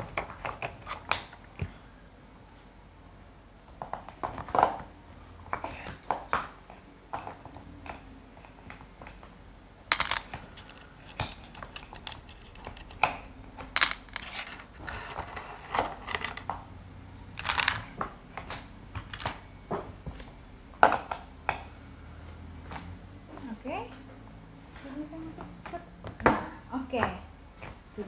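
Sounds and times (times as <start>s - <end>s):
wooden blocks clicking and knocking: 9.9s - 16.6s, 17.4s - 21.6s.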